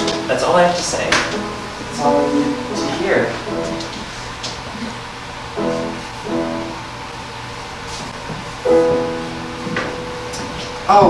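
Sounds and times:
keyboard chords: 0.0s - 7.5s, 8.5s - 11.0s.

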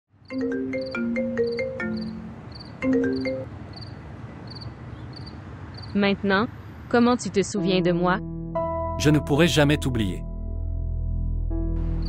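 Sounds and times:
phone ringtone: 0.3s - 3.5s.

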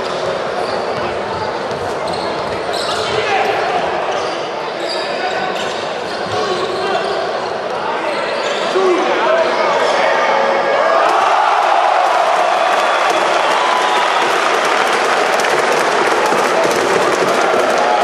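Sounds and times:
crowd voices and shouts: 0.0s - 18.0s.

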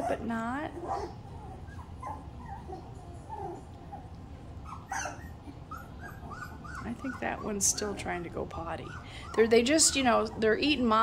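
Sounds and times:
puppies whimpering: 0.8s - 11.0s.

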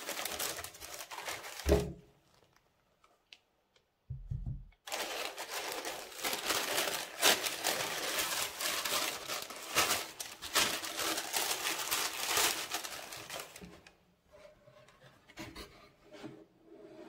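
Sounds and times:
tissue paper crinkling: 0.0s - 2.7s, 4.8s - 14.0s
soft knocks: 4.1s - 4.8s.

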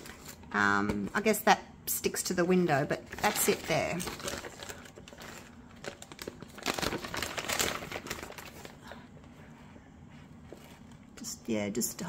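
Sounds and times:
plastic film crinkling: 3.0s - 9.0s.

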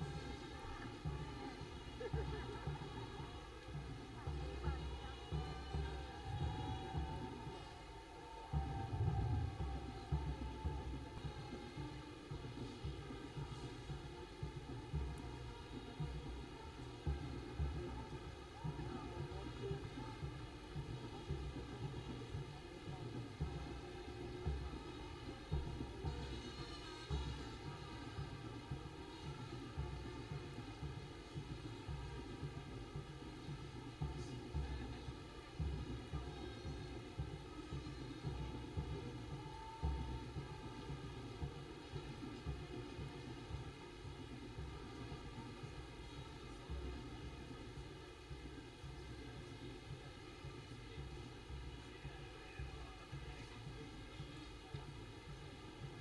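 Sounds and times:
faint outdoor background noise: 0.0s - 56.0s.

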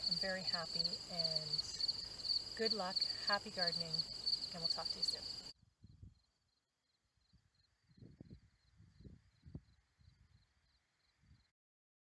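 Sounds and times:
crickets chirping: 0.0s - 11.5s.

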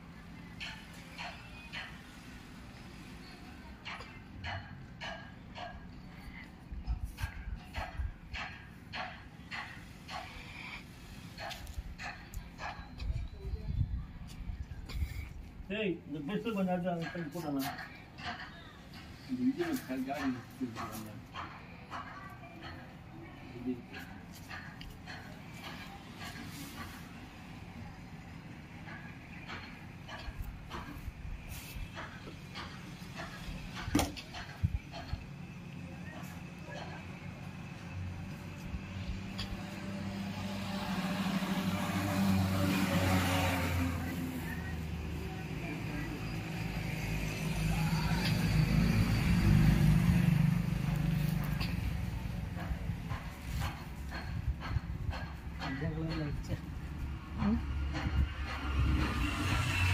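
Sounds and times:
low engine rumble: 0.0s - 59.9s
vehicle passing: 36.8s - 55.3s, 55.9s - 59.9s.

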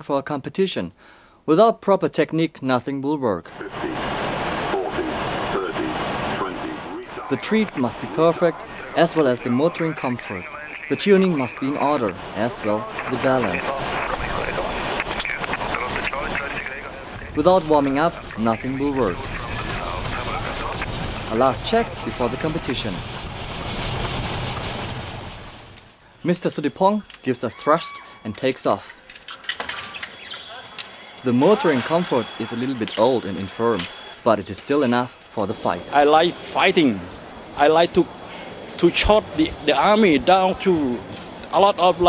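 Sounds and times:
indistinct voices: 3.5s - 23.2s, 26.2s - 42.0s
steady rushing noise: 3.5s - 27.0s, 31.1s - 42.0s.

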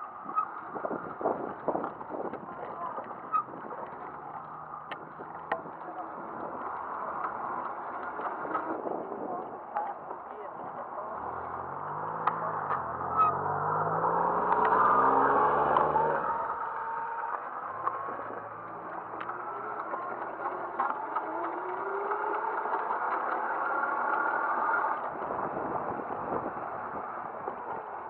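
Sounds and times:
scooter motor whirring: 0.0s - 9.5s, 11.1s - 28.0s
clicks and rattles on pavement: 0.0s - 11.4s, 15.8s - 28.0s.

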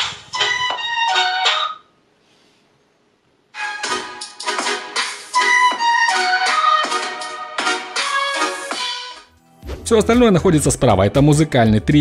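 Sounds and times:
music through tablet speakers: 0.0s - 1.9s, 3.5s - 12.0s.

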